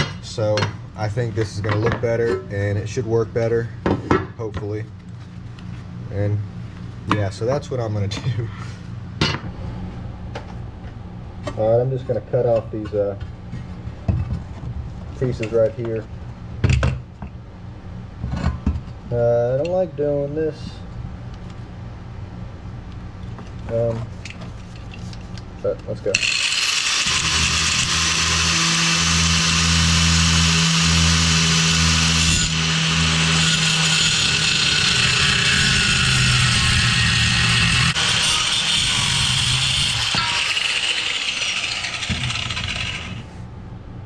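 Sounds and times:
angle grinder cutting metal plate: 26.2s - 43.2s.

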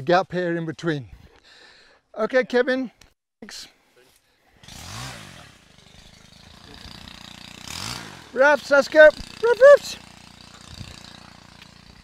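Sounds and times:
small motorcycle engine revving: 4.6s - 12.0s.

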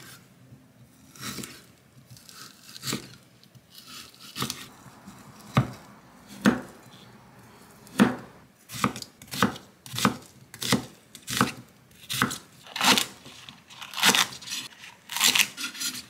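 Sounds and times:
knife chopping onion on wood board: 5.4s - 6.8s, 7.8s - 13.0s.

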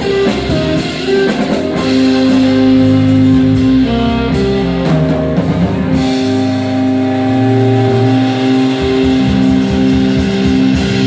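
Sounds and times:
rock band sustained guitar chord: 0.0s - 11.0s.

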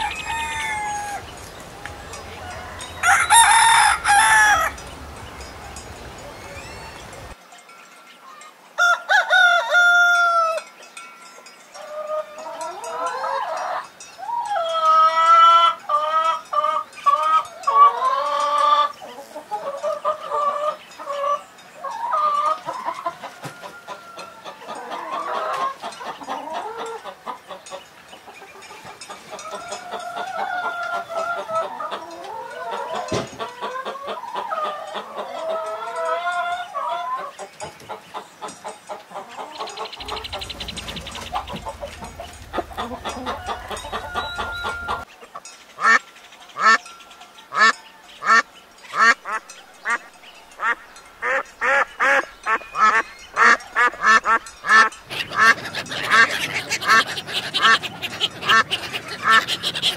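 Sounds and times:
chickens clucking: 0.0s - 7.4s, 11.5s - 59.9s
loud duck quacks: 53.4s - 59.9s.

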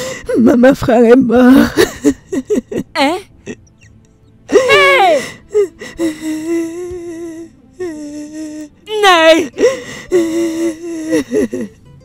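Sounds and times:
woman's anguished cry: 4.5s - 8.0s.

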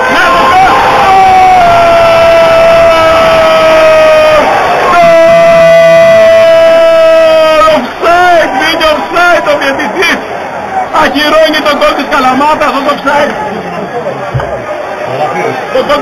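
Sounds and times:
man shouting: 0.0s - 10.0s
football crowd cheering: 0.0s - 16.0s.

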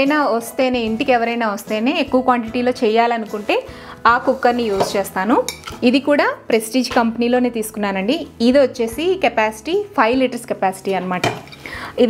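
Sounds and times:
woman talking: 0.0s - 12.0s
metal pots clinking and knocking: 4.7s - 5.9s, 11.0s - 11.7s.

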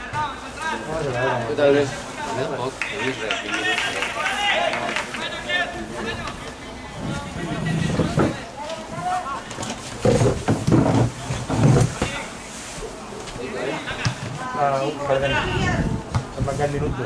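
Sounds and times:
spectators talking: 0.0s - 17.0s
low rumbles on microphone: 6.8s - 8.5s.

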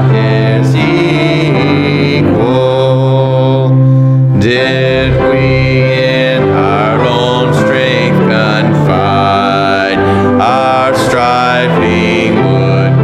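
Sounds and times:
congregation singing a hymn: 0.0s - 13.0s
instrumental accompaniment: 0.0s - 13.0s.

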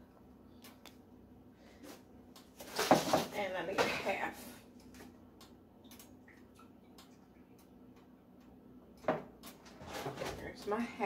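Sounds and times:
containers moved on counter: 2.6s - 3.3s.

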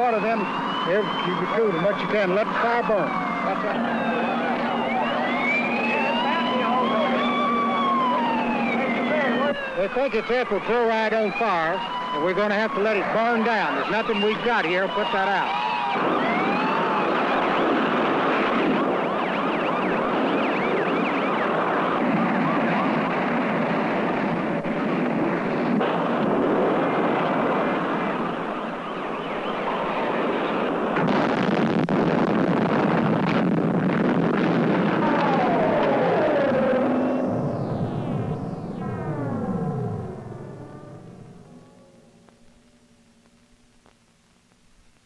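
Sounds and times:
sirens wailing: 0.0s - 43.8s
fire scene noise: 0.0s - 45.0s.

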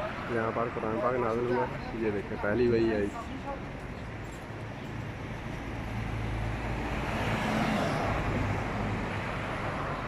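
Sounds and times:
street traffic: 0.0s - 10.0s
car passing close by: 6.1s - 10.0s.

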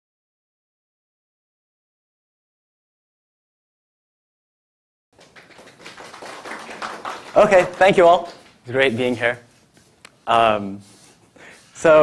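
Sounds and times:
light scattered applause: 5.2s - 8.6s.

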